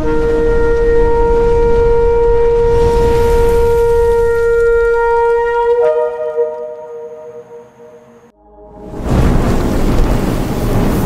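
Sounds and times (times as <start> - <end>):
shofar blast: 0.0 - 9.7
low rumble: 8.2 - 11.0.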